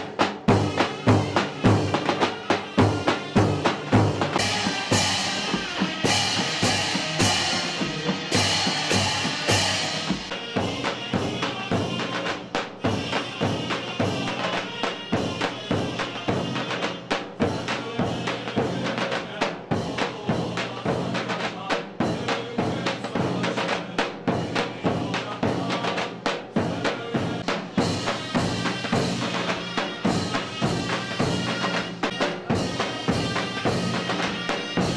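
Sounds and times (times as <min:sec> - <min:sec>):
cymbals crashing: 0:00.0 - 0:19.1, 0:27.4 - 0:34.9
drums beating march rhythm: 0:00.0 - 0:34.9
shrill reed pipe melody: 0:00.6 - 0:16.6, 0:27.8 - 0:34.9.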